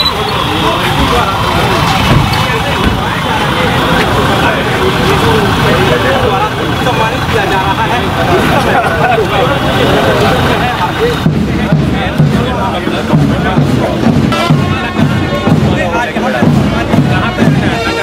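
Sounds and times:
people talking at once: 0.0s - 18.0s.

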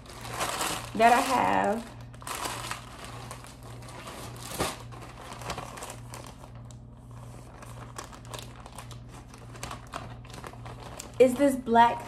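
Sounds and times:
faint low hum: 0.0s - 12.0s
plastic packaging crinkling: 0.0s - 12.0s.

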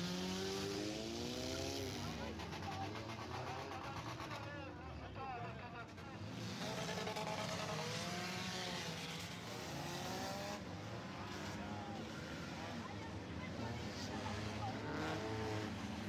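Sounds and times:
racing car engines passing: 6.2s - 16.0s.

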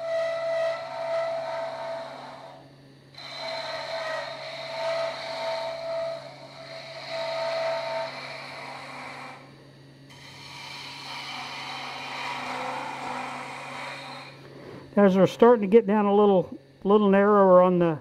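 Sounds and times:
turning tool cutting wood: 0.0s - 2.6s, 3.2s - 9.5s, 10.1s - 14.4s
lathe motor hum: 0.0s - 16.8s.

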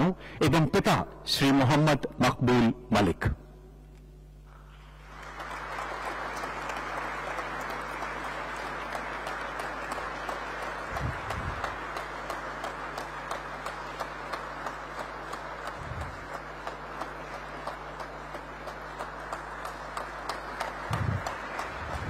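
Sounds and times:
audience applauding: 4.7s - 22.0s.

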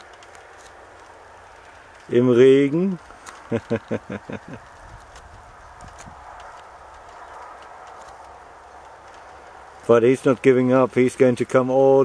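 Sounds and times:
light rain falling: 0.0s - 12.0s.

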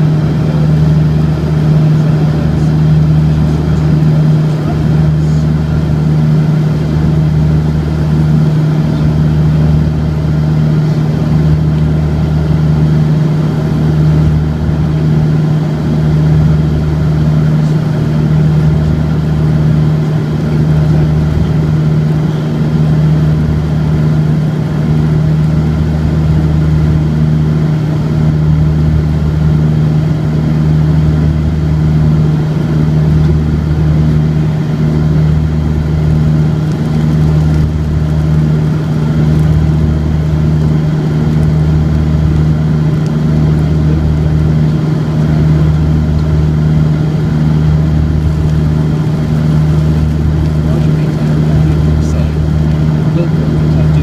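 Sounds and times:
turboprop engine drone: 0.0s - 54.0s.

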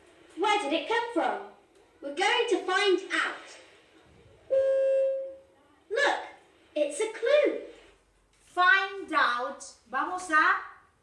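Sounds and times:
steady horn-like tone: 4.5s - 5.4s.

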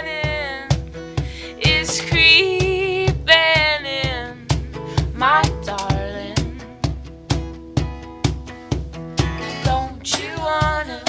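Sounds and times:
woman singing: 0.0s - 6.7s, 9.4s - 11.0s
acoustic guitar: 0.0s - 11.0s
cajon beat: 0.0s - 11.0s.

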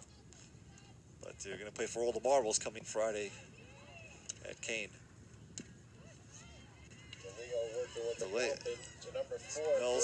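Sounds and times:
faint commentary: 0.0s - 10.0s.

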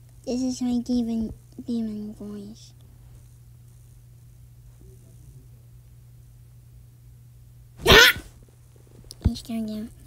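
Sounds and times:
person shouting in raspy voice: 7.8s - 8.2s.

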